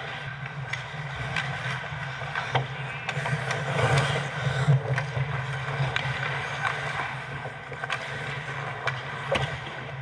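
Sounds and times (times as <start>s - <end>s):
skates scraping ice: 0.0s - 10.0s.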